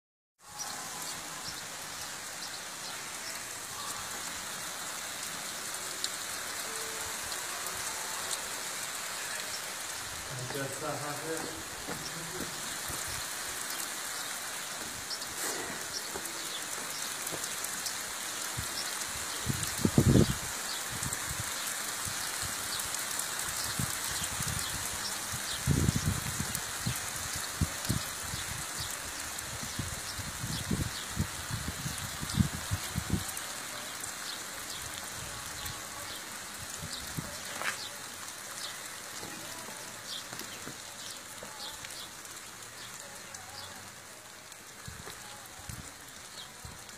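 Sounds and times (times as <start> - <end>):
rain falling on pavement: 0.4 - 46.9.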